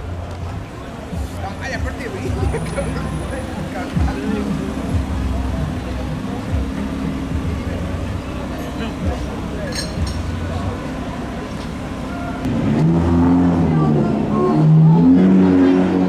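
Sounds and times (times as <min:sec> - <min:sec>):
people talking: 0:00.0 - 0:12.5, 0:13.4 - 0:16.0
car engines idling: 0:00.0 - 0:16.0
street traffic: 0:00.0 - 0:16.0.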